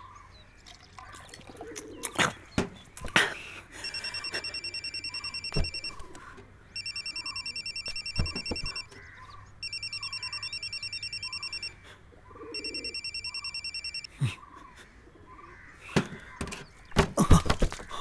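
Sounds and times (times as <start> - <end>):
phone ringing: 3.8 - 11.8, 12.4 - 14.1.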